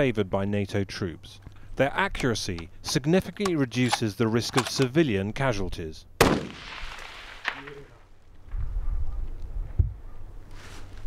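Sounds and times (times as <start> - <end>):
rifle shot echo: 6.2 - 8.1.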